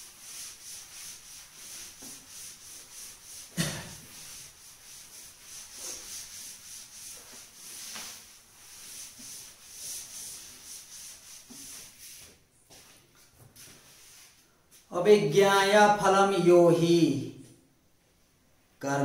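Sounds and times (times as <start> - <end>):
cloth rubbing chalkboard: 0.0 - 14.9.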